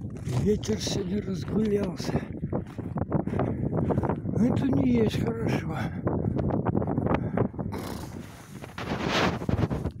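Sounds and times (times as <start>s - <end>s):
gusty wind buffeting microphone: 0.0s - 10.0s.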